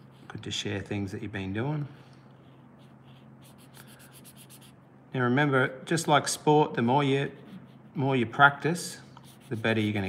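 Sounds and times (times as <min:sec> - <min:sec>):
marker pen scratching on paper: 0:00.0 - 0:00.9, 0:02.4 - 0:04.9, 0:07.0 - 0:10.0.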